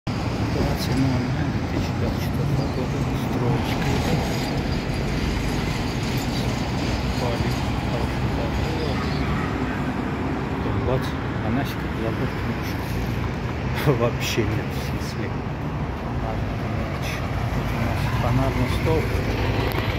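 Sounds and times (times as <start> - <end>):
road traffic passing: 0.1 - 19.9.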